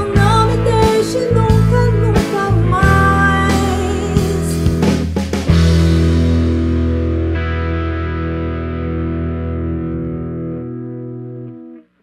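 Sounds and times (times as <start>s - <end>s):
distorted electric guitar chord ringing: 5.5s - 12.0s.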